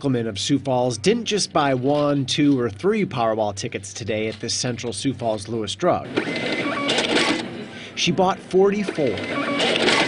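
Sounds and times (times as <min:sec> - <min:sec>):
ticket printer whirring: 0:06.0 - 0:10.0.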